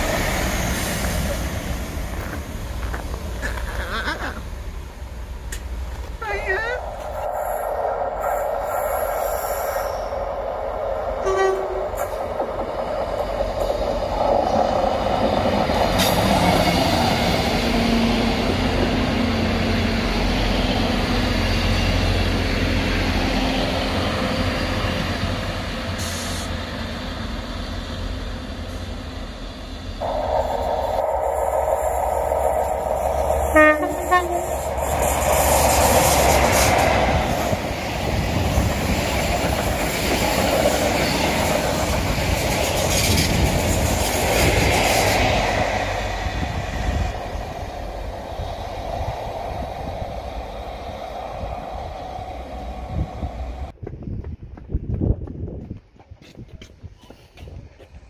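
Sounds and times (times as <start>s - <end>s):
train passing: 0.0s - 56.0s
two-note train horn: 11.2s - 12.0s, 33.5s - 34.6s
train wheel clatter: 30.0s - 47.7s.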